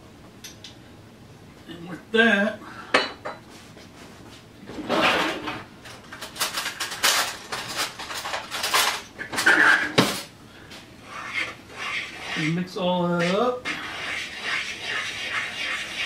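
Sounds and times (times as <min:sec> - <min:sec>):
metal utensils clattering: 0:04.8 - 0:10.3.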